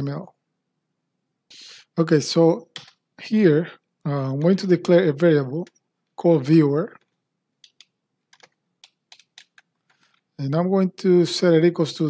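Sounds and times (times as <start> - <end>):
faint keyboard keystrokes: 6.9 - 10.3.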